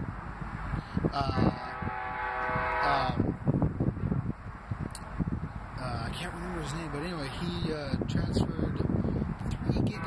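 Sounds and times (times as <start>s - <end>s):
wind noise on microphone: 0.0s - 10.0s
man's drawn-out hesitation sound: 1.0s - 2.0s, 2.6s - 3.4s, 5.7s - 10.0s.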